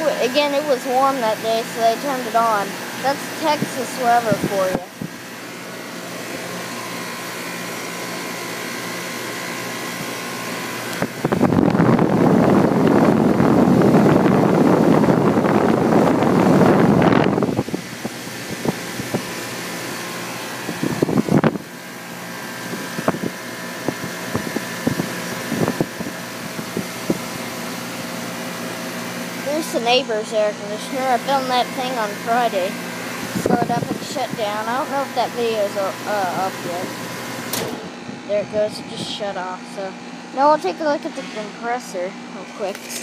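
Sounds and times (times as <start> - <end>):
compressor humming: 0.0 - 43.0
condenser fan blowing air: 0.0 - 43.0.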